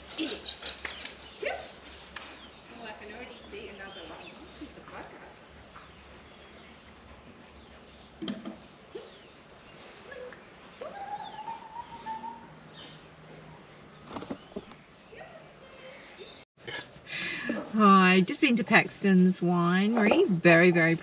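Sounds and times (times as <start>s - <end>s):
rising bird call: 10.0s - 13.0s.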